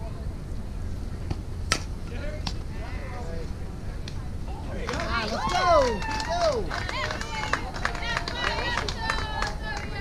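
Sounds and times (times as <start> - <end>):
bat cracking ball: 1.7 - 2.6.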